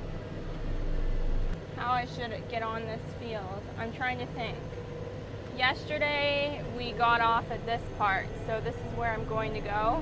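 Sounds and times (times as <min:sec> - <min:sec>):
engine drone from inside cab: 0:00.0 - 0:10.0.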